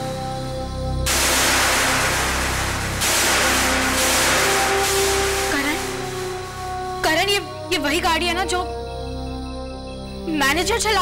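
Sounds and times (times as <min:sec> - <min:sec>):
hissing rushing sound effect: 0:01.1 - 0:07.1.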